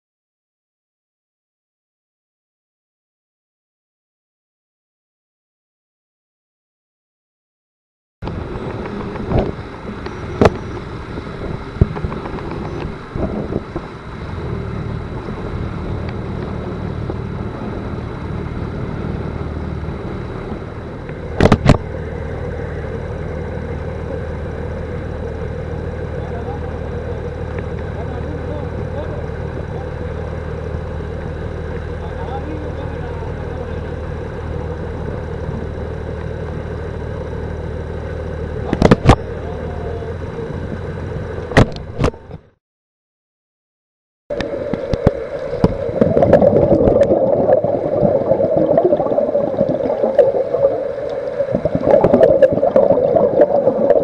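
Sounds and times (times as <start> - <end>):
boat engine humming: 8.2 - 42.6, 44.3 - 54.0.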